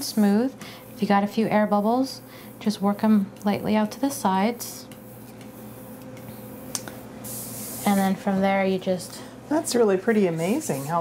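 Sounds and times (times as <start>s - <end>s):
smoother rubbing over fondant: 0.0s - 6.7s.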